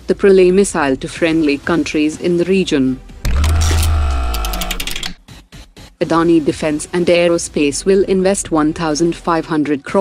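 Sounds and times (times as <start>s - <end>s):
rapid mechanical clicking: 3.3s - 5.2s.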